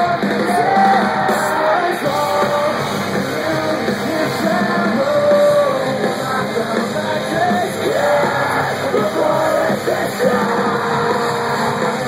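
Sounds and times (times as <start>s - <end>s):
electric guitars: 0.0s - 12.0s
yelled vocals: 0.0s - 12.0s.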